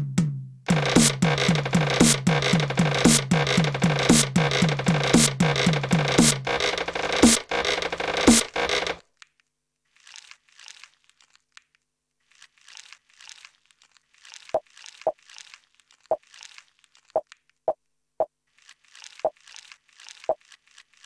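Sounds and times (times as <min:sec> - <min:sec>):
crackly noise bursts: 0:00.7 - 0:09.1.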